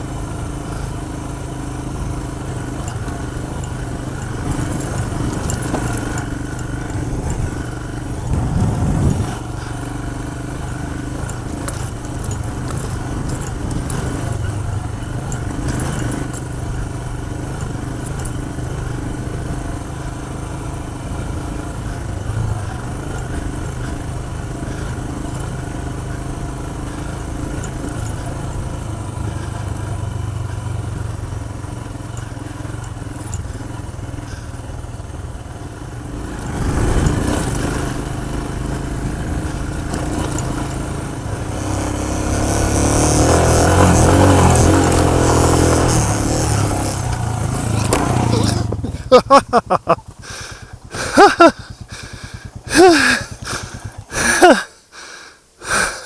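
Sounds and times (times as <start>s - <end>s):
motorcycle engine running: 0.0s - 56.0s
rattle: 2.2s - 19.2s, 21.0s - 31.2s, 31.8s - 35.1s, 36.0s - 54.6s
wind noise: 8.2s - 9.5s.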